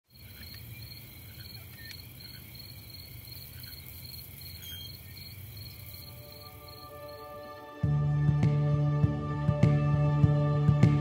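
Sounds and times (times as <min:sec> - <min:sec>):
crickets chirping: 0:00.0 - 0:07.8
low outdoor ambient hum: 0:00.1 - 0:07.8.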